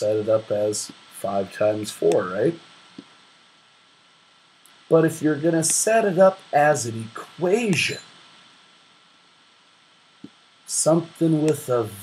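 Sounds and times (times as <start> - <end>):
faint constant hum: 0.0 - 12.0
low recording hiss: 0.0 - 12.0.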